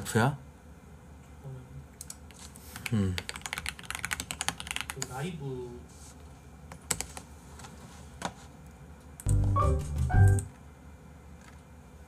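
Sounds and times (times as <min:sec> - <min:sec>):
fast typing on keyboard: 0:02.0 - 0:05.1, 0:06.7 - 0:07.2.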